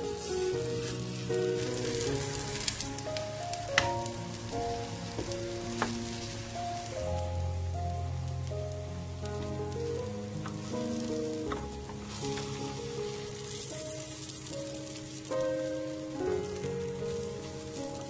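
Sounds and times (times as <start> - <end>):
background music: 0.0 - 18.0
food sizzling in oil: 0.0 - 18.0.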